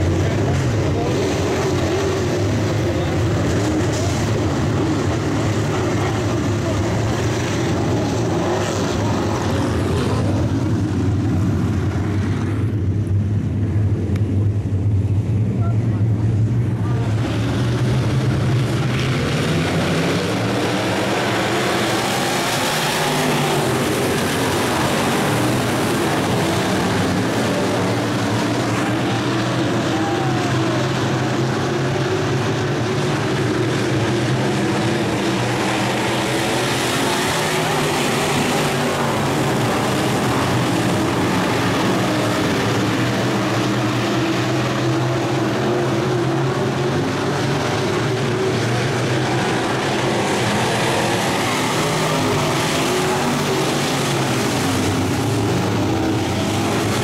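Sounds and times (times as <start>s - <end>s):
race car engines running hard: 0.0s - 57.0s.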